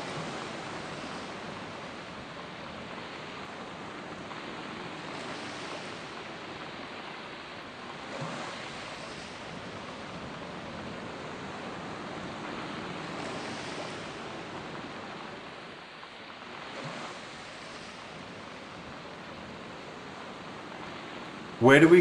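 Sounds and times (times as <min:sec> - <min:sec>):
ocean waves washing in: 0:00.0 - 0:22.0.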